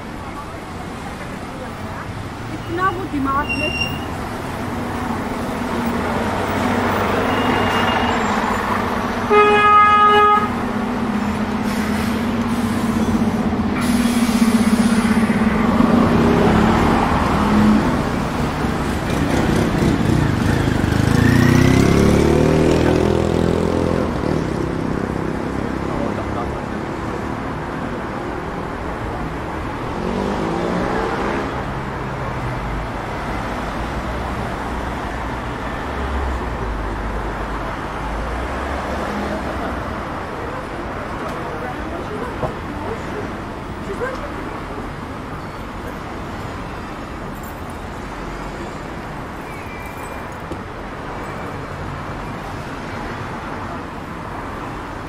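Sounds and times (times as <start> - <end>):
city road traffic: 0.0 - 55.0
vehicle horn toot: 7.2 - 8.4, 9.3 - 10.6
vehicle engine pulling away: 11.1 - 25.2.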